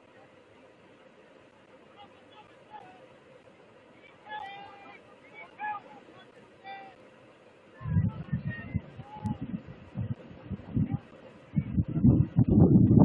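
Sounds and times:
background hiss: 0:00.0 - 0:12.2
distant shouts: 0:01.6 - 0:09.6
low rumble on microphone: 0:07.8 - 0:13.0.

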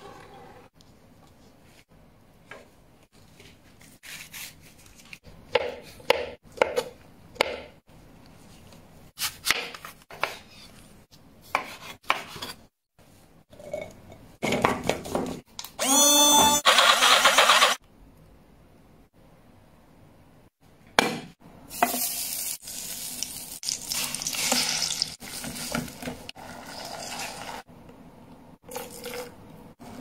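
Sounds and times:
electric blender whirring: 0:15.8 - 0:17.8.

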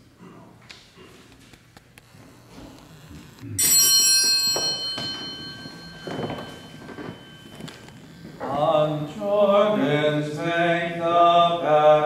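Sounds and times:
small bell ringing: 0:03.6 - 0:08.2.

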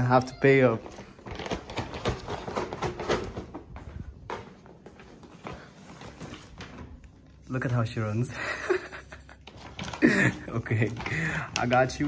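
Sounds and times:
hurried footsteps on tiled floor: 0:00.0 - 0:07.5.

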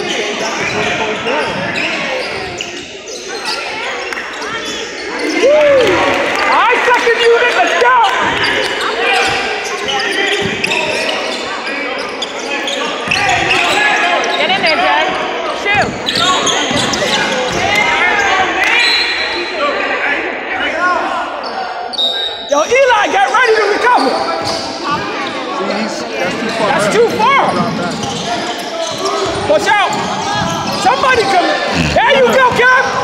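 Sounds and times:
voices calling out: 0:21.4 - 0:33.0.

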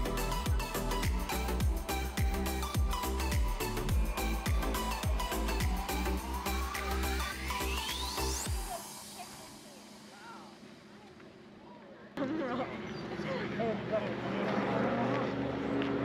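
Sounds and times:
background music: 0:00.0 - 0:10.5
rising sweep: 0:00.0 - 0:10.7
distant voices: 0:08.8 - 0:16.0.

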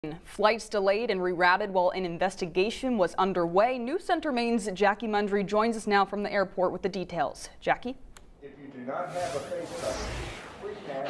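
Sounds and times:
steady microphone hiss: 0:07.4 - 0:11.0.

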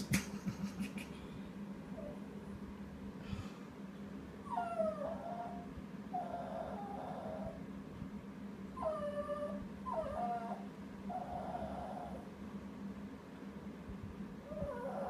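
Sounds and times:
small dog whining: 0:04.4 - 0:07.6, 0:08.8 - 0:12.3, 0:14.5 - 0:15.0.

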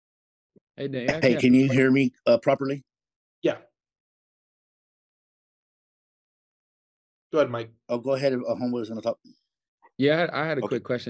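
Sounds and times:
person saying yeah over phone: 0:01.0 - 0:01.9.

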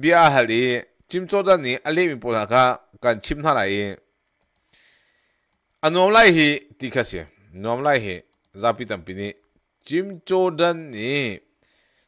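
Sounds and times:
man speaking: 0:00.0 - 0:04.1, 0:05.8 - 0:11.5.

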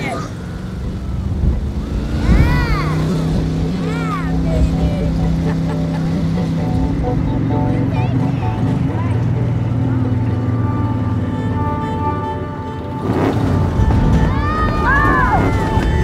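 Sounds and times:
open vehicle rumbling: 0:00.0 - 0:16.0
music score of held notes: 0:04.4 - 0:16.0
woman whooping: 0:14.3 - 0:15.8.

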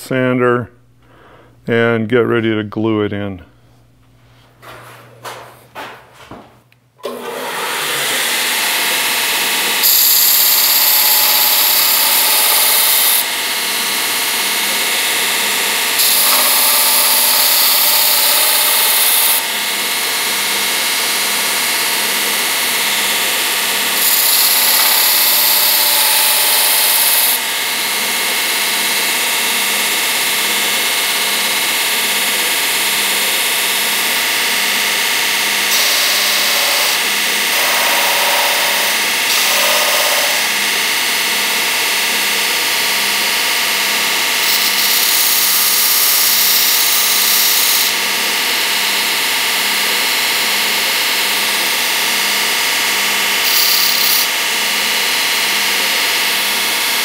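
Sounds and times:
belt sander running: 0:07.0 - 0:57.0
steel file grinding on belt: 0:07.2 - 0:30.7, 0:35.6 - 0:41.1, 0:41.8 - 0:48.0, 0:53.2 - 0:55.3.

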